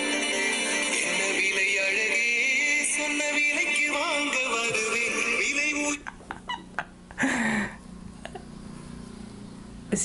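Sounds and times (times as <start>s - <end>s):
man laughing: 4.8s - 8.5s.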